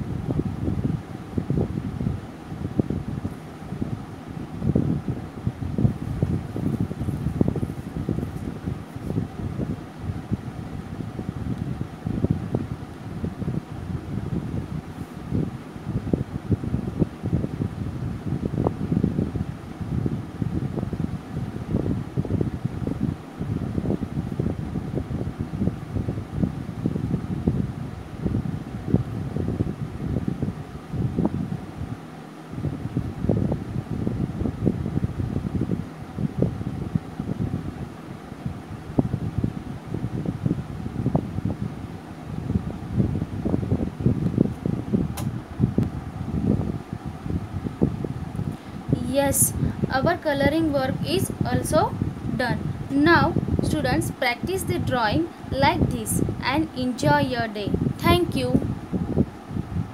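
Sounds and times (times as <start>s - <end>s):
fan air buffeting microphone: 0.0s - 59.9s.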